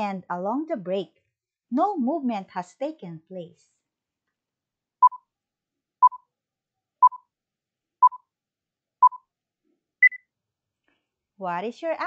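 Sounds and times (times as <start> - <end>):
countdown timer beeps: 5.0 - 5.2, 6.0 - 6.2, 7.0 - 7.3, 8.0 - 8.3, 9.0 - 9.2, 10.0 - 10.2
higher-pitched timer beep: 6.0 - 6.2, 10.0 - 10.2.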